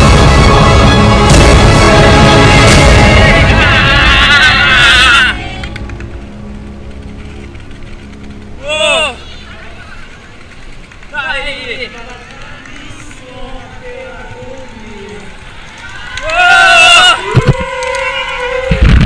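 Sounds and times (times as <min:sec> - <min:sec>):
people shouting: 0:01.9 - 0:05.8, 0:08.6 - 0:10.0, 0:13.2 - 0:18.9.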